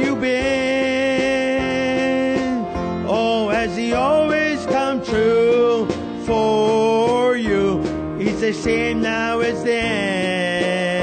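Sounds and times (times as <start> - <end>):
person singing gospel song: 0.0 - 11.0.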